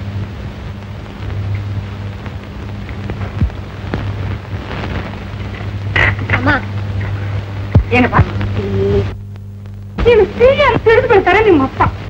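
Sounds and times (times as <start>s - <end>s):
film soundtrack hiss: 0.0s - 12.0s
low mains hum: 0.0s - 12.0s.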